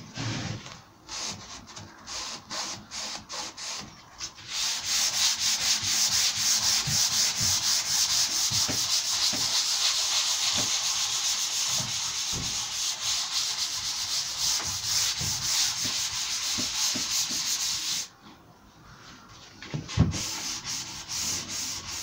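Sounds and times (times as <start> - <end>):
sandpaper rubbing on wood: 1.1 - 18.1, 19.9 - 22.0.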